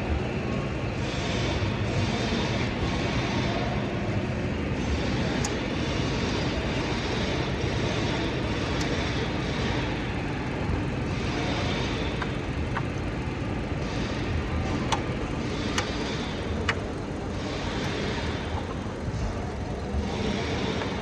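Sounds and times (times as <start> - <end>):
mechanical drone with low hum: 0.0 - 21.0.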